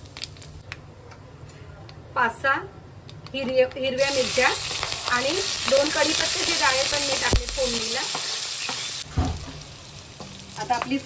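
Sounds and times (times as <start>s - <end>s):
chillies sizzling in hot oil: 3.9s - 11.0s.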